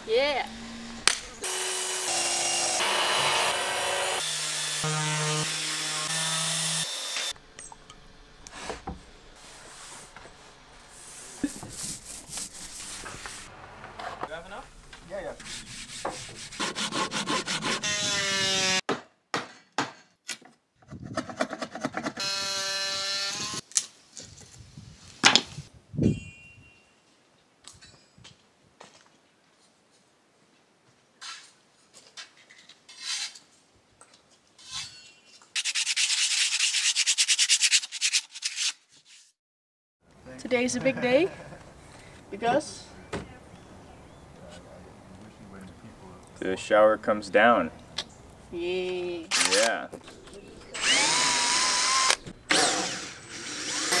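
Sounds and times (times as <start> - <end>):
power tools running: 0.5 - 7.4, 22.2 - 23.6, 50.7 - 54.0
brush rubbing oil into wood: 10.9 - 13.5, 15.2 - 17.4.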